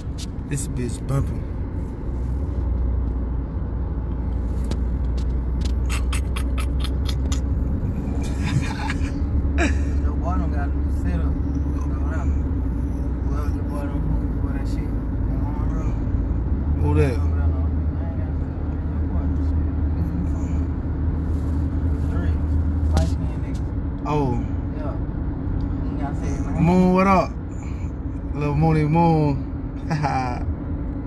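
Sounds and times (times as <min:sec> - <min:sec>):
car driving rumble inside cabin: 0:00.0 - 0:31.0.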